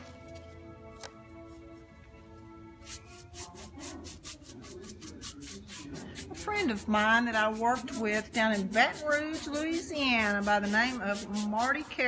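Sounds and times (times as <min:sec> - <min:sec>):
brush scrubbing stain onto frame: 0:02.8 - 0:12.0.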